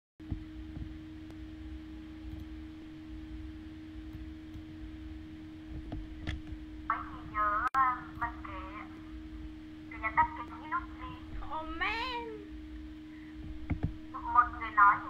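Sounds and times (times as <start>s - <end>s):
low hum on open microphone: 0.2s - 15.0s
low rumble: 0.2s - 15.0s
person's voice: 6.9s - 9.0s, 9.9s - 12.5s, 14.2s - 15.0s.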